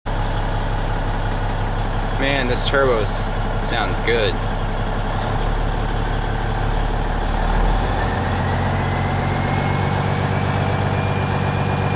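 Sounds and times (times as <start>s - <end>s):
diesel engine idling: 0.1s - 11.9s.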